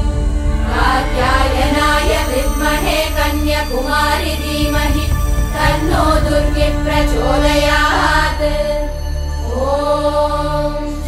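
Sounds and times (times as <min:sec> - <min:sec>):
steady low drone: 0:00.0 - 0:11.0
women chanting: 0:00.0 - 0:11.0.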